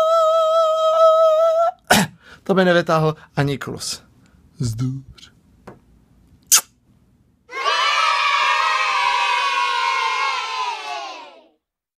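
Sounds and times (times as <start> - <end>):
kiss smack: 6.5 - 6.8
children cheering and shouting: 7.5 - 11.6.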